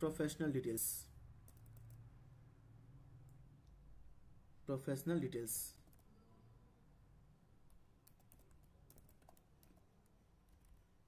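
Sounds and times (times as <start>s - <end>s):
typing on computer keyboard: 1.5s - 2.0s, 7.7s - 9.9s.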